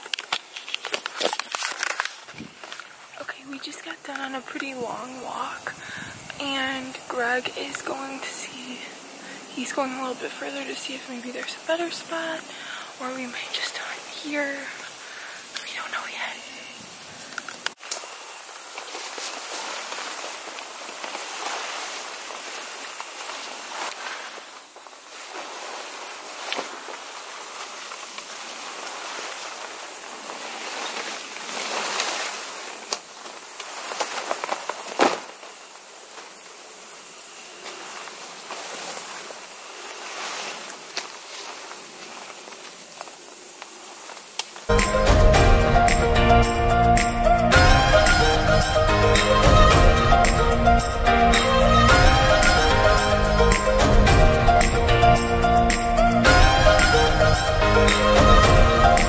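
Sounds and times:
steady high hiss: 0.0s - 59.0s
fabric rustling and flapping: 18.6s - 36.4s, 37.6s - 42.9s.

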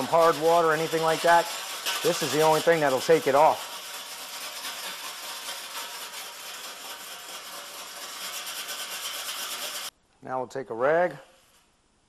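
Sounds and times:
scouring stick scraping stove top: 0.0s - 9.9s.

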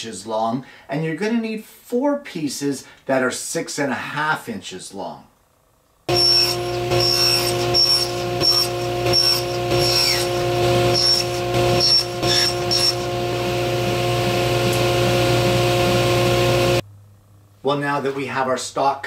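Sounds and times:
table saw cutting wood: 6.1s - 16.8s.

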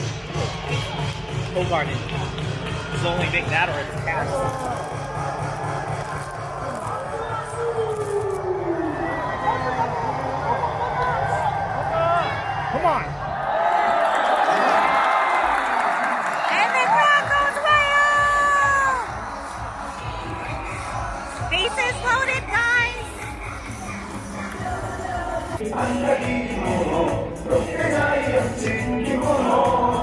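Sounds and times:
music over stadium speakers: 0.0s - 7.6s, 16.8s - 30.0s
crowd cheering and chanting: 0.0s - 30.0s.

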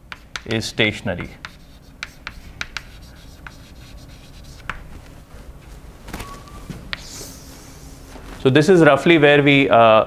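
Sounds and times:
chalk tapping on board: 0.0s - 4.9s, 6.9s - 7.1s
chalk scratching on blackboard: 1.2s - 4.9s.

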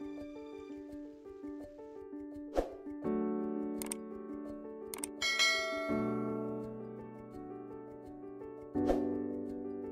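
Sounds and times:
calm background music: 0.0s - 9.9s
bell-like chime: 5.2s - 6.4s.

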